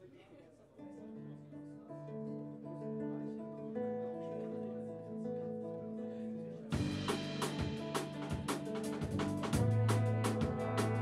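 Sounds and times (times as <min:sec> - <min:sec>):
acoustic guitar chords: 0:01.5 - 0:11.0.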